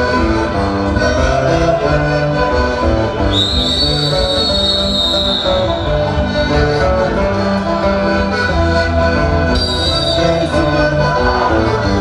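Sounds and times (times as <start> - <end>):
folk dance music with plucked strings: 0.0 - 12.0
long high steady whistle: 3.3 - 6.0.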